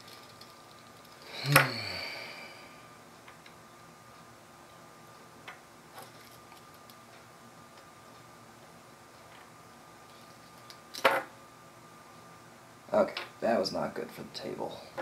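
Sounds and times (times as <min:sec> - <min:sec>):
small metal parts clicking: 0:00.0 - 0:01.3
faint high whine: 0:00.0 - 0:15.0.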